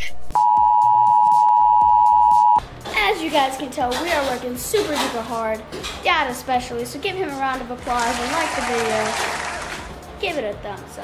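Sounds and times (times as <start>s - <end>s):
two-tone electronic beep: 0.4s - 2.6s.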